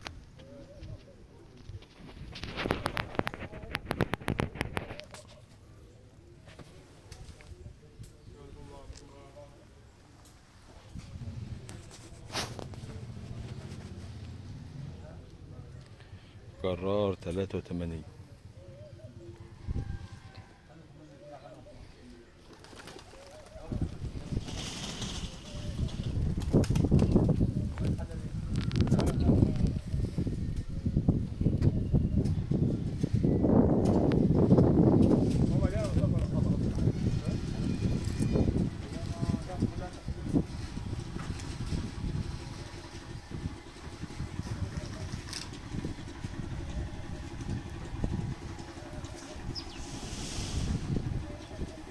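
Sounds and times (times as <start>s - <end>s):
pigeon cooing: 2.3s - 6.6s, 18.0s - 26.2s
diesel tractor engine idling: 40.8s - 51.9s.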